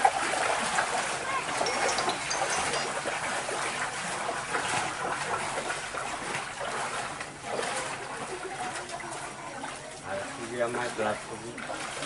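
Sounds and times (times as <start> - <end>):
feet wading through water: 0.0 - 12.0.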